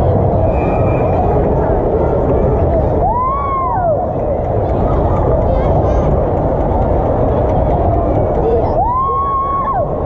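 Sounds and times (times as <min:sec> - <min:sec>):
building hum: 0:00.0 - 0:10.0
crowd murmur: 0:00.0 - 0:10.0.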